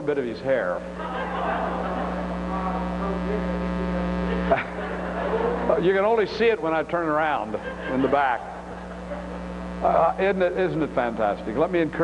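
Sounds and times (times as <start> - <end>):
electrical mains hum: 0.0 - 12.0
audience laughter: 1.0 - 2.9, 4.3 - 5.8, 7.4 - 9.5.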